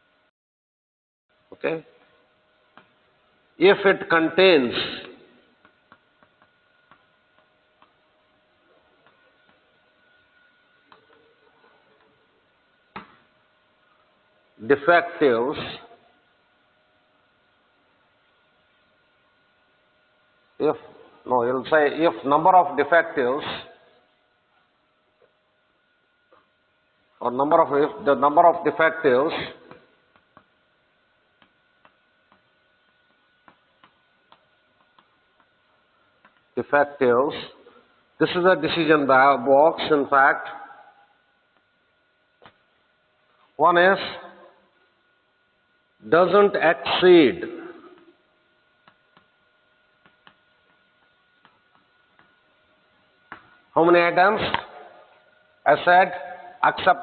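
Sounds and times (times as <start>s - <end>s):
faint steady hum: 1.3s - 57.0s.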